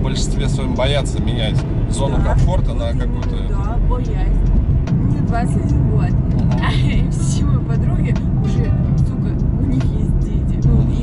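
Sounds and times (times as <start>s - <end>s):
car engine and road hum: 0.0s - 11.0s
people talking: 0.0s - 11.0s.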